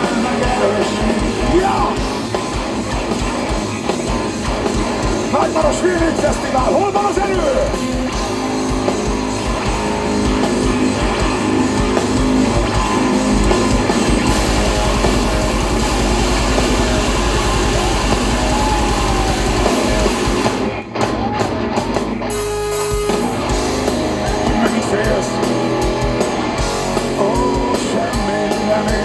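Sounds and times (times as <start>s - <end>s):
hard rock band playing: 0.0s - 29.0s.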